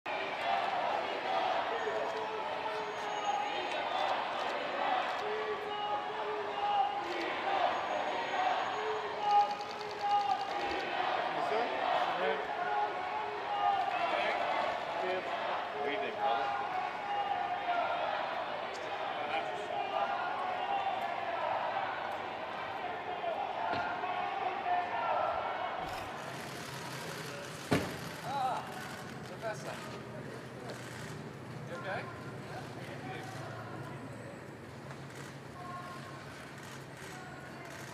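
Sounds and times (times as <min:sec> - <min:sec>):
indistinct street voices: 0:00.1 - 0:37.9
faint rapid clicks: 0:09.2 - 0:10.9, 0:34.9 - 0:37.9.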